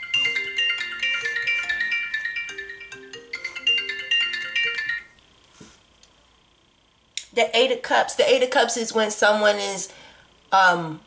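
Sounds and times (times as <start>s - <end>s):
phone ringtone melody: 0.0s - 5.2s.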